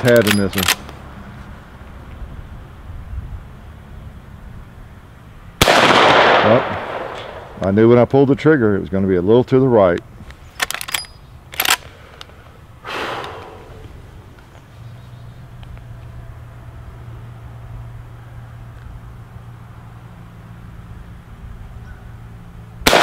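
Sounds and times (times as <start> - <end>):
rifle lever clacking: 0.0 - 0.9, 10.6 - 11.8
rifle shot with echo: 5.6 - 7.6.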